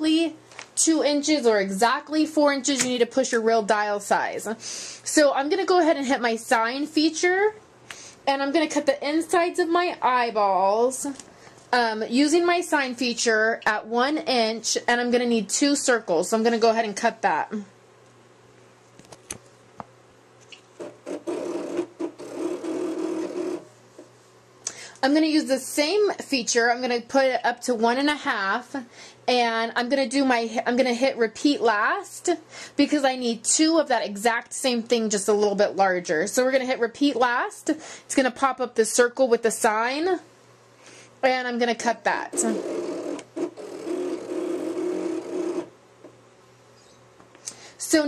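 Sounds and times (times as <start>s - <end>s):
cutting machine motors buzzing: 20.8s - 23.7s, 42.3s - 45.7s.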